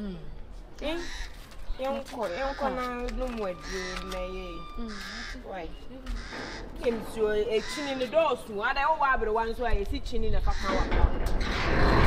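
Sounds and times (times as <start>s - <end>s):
woman making broken vocal sounds: 0.0s - 0.4s.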